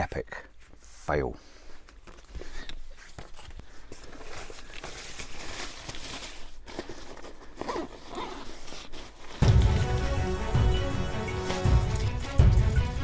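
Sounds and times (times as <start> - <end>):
rain cover rustling and crinkling: 2.0 - 13.0.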